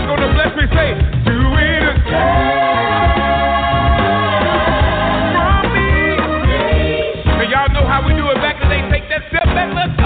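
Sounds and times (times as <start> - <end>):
steady bass line: 0.0 - 10.0
choir singing long chords: 2.0 - 7.2.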